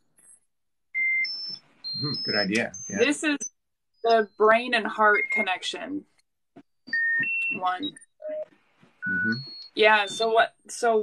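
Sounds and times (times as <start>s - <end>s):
short electronic beeps: 1.0s - 5.8s, 6.9s - 10.4s.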